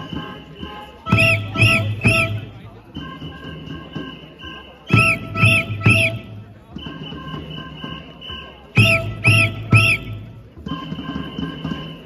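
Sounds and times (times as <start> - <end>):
shrill whistle blasts: 0.0 - 12.0.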